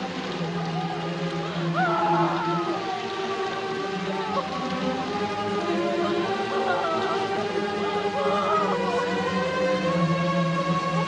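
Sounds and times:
mournful film music: 0.0s - 11.0s
woman wailing in grief: 1.7s - 2.9s, 6.2s - 9.0s.

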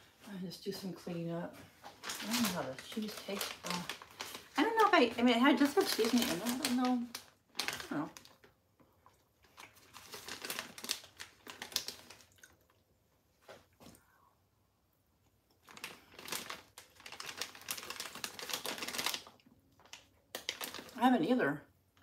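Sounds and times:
plastic bag crinkling: 1.7s - 8.6s, 9.4s - 12.8s, 15.6s - 21.1s.

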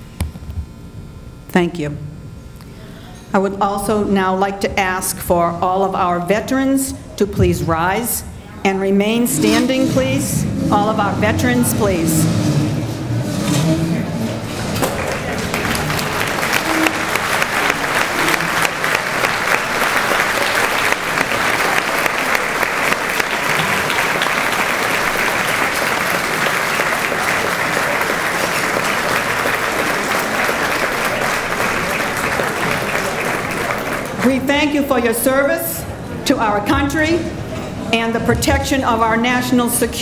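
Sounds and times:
large audience applauding: 14.5s - 34.5s.

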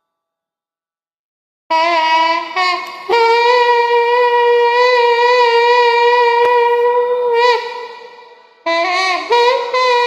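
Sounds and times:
double-reed pipe playing: 1.7s - 10.0s.

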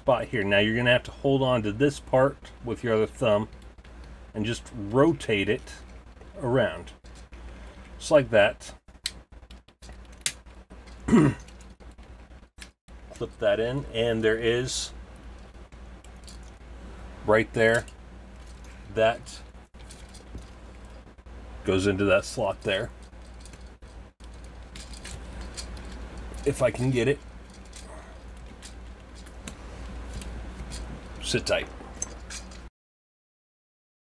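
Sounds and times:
low steady hum: 0.0s - 32.7s
man clearing his throat: 11.1s - 11.5s
plastic parts clicking and rubbing: 15.2s - 16.6s, 19.7s - 21.0s, 22.4s - 32.7s.

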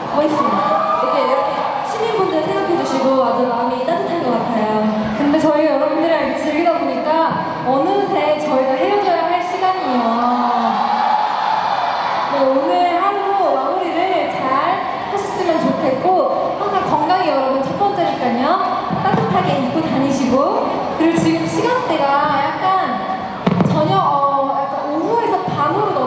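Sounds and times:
woman talking through microphone: 0.0s - 10.8s, 12.3s - 26.0s
audience noise: 0.0s - 26.0s.

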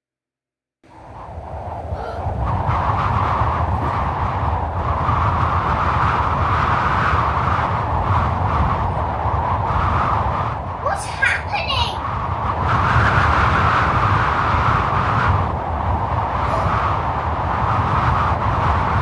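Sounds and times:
rushing wind: 0.8s - 19.0s.

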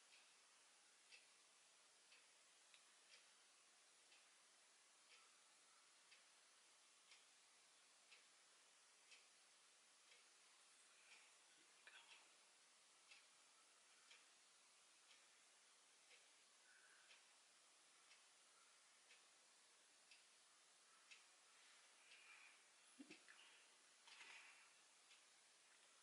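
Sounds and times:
faint ticking: 0.0s - 26.0s
soft clicks: 21.1s - 26.0s.

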